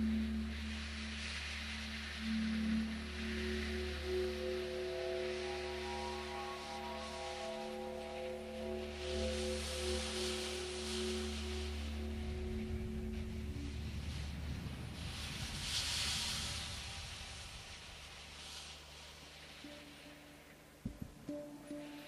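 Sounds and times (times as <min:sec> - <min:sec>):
ringing ambient tones: 0:00.0 - 0:14.5
wash of hiss: 0:00.0 - 0:20.8
low drone: 0:00.0 - 0:22.0.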